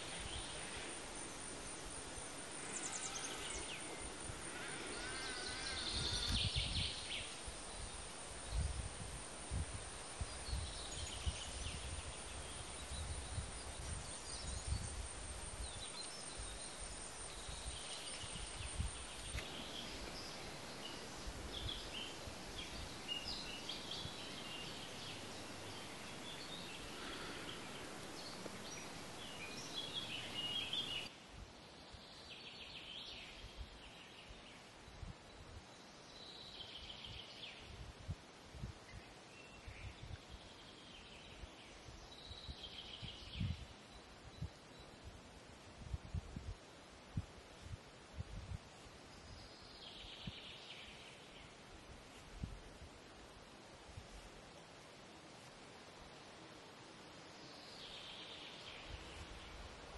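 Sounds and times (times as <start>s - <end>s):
small birds chirping: 0.0s - 8.8s, 9.5s - 31.1s.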